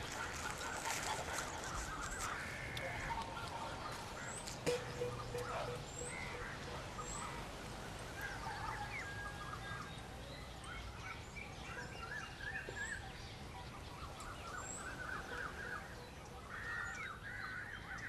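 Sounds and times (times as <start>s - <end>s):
birds chirping and calling: 0.0s - 18.0s.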